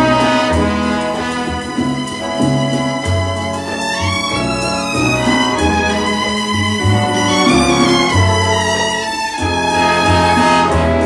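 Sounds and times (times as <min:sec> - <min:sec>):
orchestra with violins playing: 0:00.0 - 0:11.0.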